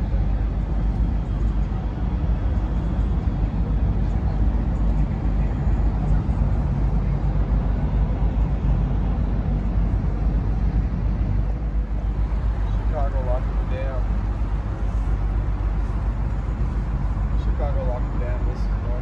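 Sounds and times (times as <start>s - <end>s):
boat engine deep rumble: 0.0s - 19.0s.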